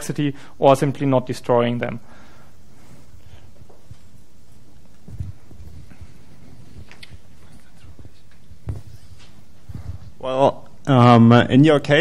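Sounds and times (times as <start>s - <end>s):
soft low thumps: 3.5s - 10.2s.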